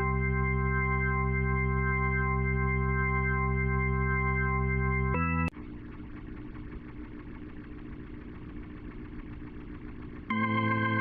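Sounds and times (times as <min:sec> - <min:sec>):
faint held organ tones: 0:00.0 - 0:05.5, 0:10.3 - 0:11.0
organ low hum and rumble: 0:00.0 - 0:11.0.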